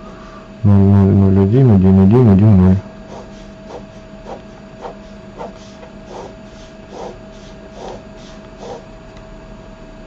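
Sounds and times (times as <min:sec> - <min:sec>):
faint steady hum: 0:00.0 - 0:10.0
ballpoint pen scratching on paper: 0:03.1 - 0:08.9.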